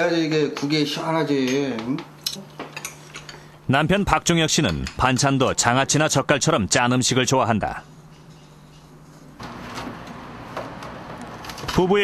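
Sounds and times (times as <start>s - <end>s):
chopsticks clicking against dishes: 4.6s - 5.2s.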